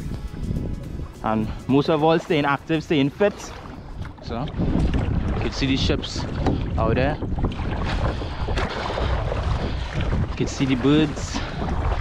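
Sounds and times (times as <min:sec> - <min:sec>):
water slapping against kayak: 0:00.0 - 0:12.0
water splash: 0:00.0 - 0:12.0
wind buffeting microphone: 0:00.0 - 0:12.0.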